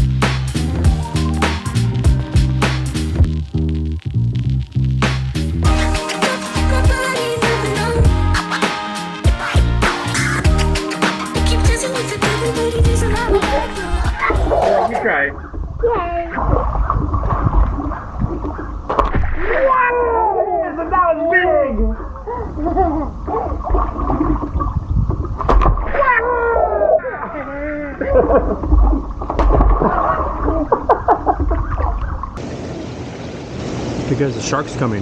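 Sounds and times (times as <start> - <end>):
low rumble: 0.0 - 5.7
knocks and gurgles: 12.8 - 19.7, 23.2 - 26.2, 28.0 - 32.4
hot tub water sloshing: 13.6 - 20.0, 20.8 - 27.4, 28.0 - 34.1
child splashing into water: 25.3 - 27.4, 28.0 - 32.1.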